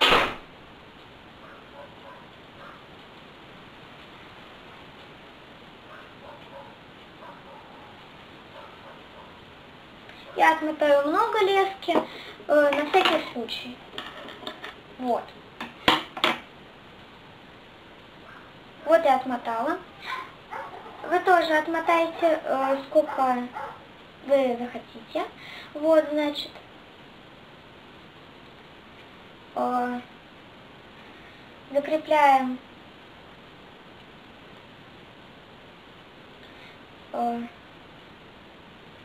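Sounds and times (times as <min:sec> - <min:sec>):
low background noise: 0:00.0 - 0:39.0.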